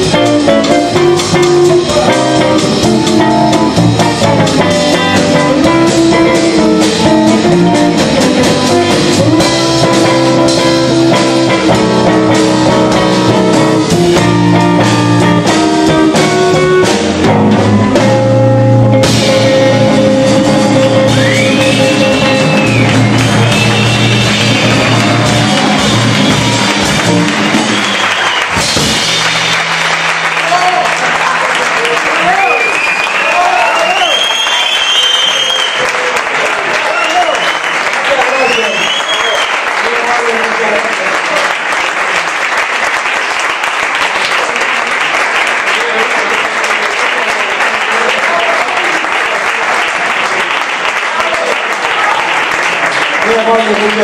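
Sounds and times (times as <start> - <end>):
jazz trio playing: 0.0 - 31.0
audience applauding: 20.2 - 54.0
cheers and whistles: 21.1 - 28.7, 31.9 - 39.7.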